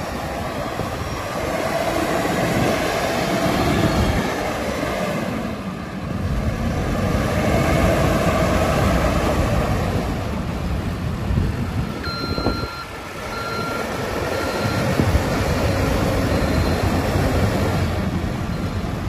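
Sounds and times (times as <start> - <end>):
diesel engine running: 0.0 - 19.0
reversing alarm beeping: 11.7 - 17.4, 18.4 - 19.0.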